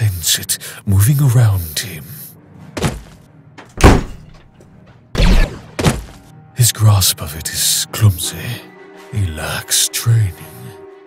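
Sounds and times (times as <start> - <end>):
heavy punch hit: 3.8 - 4.3, 5.2 - 6.0.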